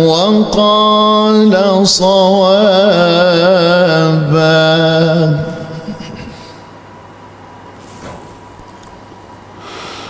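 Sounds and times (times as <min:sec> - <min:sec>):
man chanting melodically: 0:00.0 - 0:06.3.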